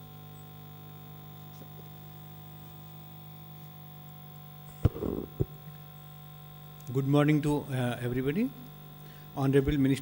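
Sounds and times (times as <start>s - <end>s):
low electrical mains hum: 0.0s - 10.0s.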